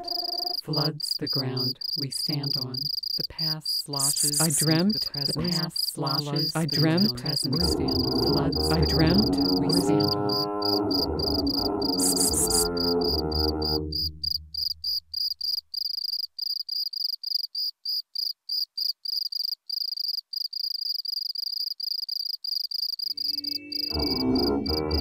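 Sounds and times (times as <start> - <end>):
processed voice tones: 0.0 - 14.0, 23.3 - 25.0
high chirping electronic pulse: 3.9 - 15.0, 23.2 - 25.0
low drone with rising glides: 7.9 - 13.8, 23.2 - 25.0.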